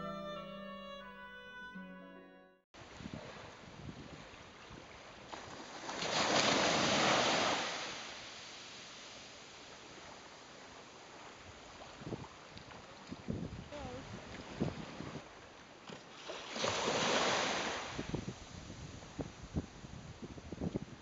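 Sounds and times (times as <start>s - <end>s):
surf washing on a beach: 2.8s - 12.5s, 16.1s - 21.0s
calm water lapping: 2.8s - 19.2s.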